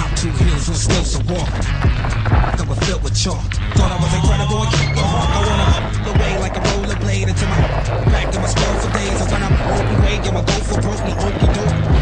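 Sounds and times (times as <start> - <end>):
bike tyres rolling on rocky trail: 0.0 - 12.0
hip-hop track with bass beat: 0.0 - 12.0.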